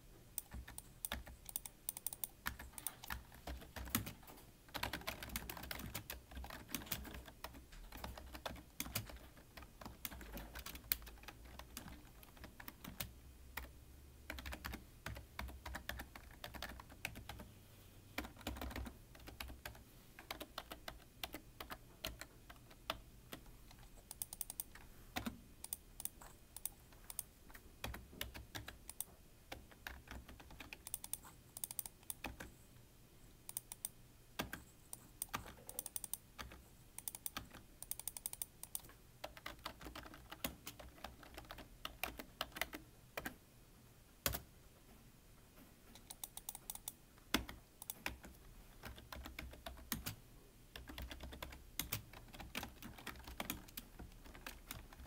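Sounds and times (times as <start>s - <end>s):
computer keyboard typing: 0.4s - 17.5s, 18.1s - 32.5s, 33.5s - 43.4s, 44.2s - 44.5s, 45.9s - 50.2s, 50.8s - 55.0s.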